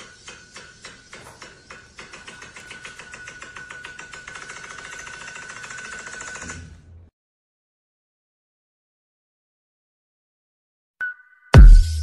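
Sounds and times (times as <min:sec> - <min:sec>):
rapid clicking rattle: 0:00.0 - 0:06.6.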